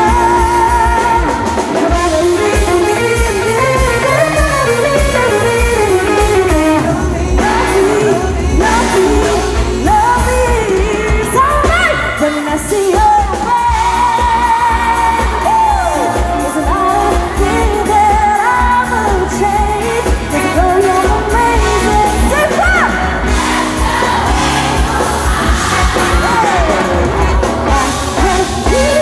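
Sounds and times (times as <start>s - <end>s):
rock band playing: 0.0s - 29.0s
woman singing into a microphone: 0.0s - 29.0s.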